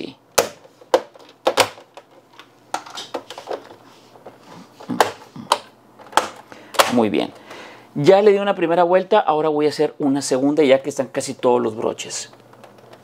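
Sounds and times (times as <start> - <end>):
plastic clips snapping into place: 4.9 - 7.0.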